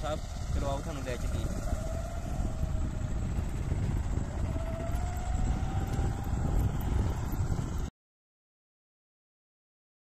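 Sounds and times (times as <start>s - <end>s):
wind buffeting microphone: 0.0s - 7.9s.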